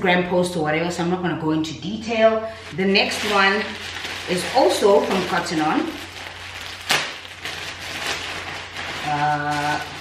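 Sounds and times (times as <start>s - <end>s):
plastic packaging crinkling: 2.5s - 10.0s
sharp crackle: 3.0s - 10.0s.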